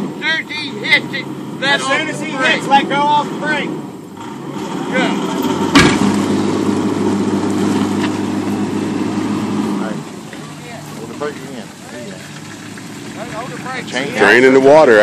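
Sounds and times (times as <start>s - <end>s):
truck engine running under load: 0.0s - 15.0s
sharp bang: 5.4s - 6.8s.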